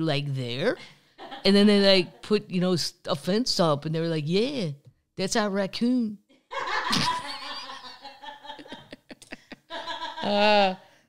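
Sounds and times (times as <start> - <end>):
woman laughing hard: 6.5 - 10.8.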